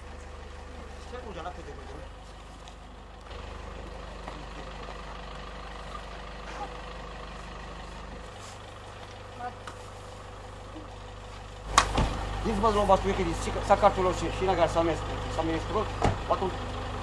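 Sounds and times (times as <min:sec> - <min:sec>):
faint voices: 0:00.0 - 0:11.6
truck engine idling: 0:00.0 - 0:17.0.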